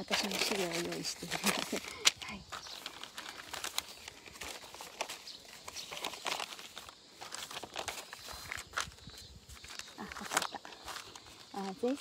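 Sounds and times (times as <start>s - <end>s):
rustling and crinkling: 0.0s - 12.0s.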